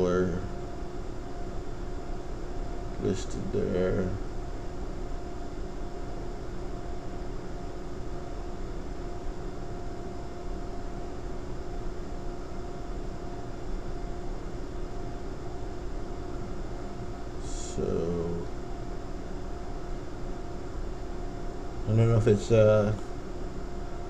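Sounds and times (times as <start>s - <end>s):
room noise hum and hiss: 0.0s - 24.0s.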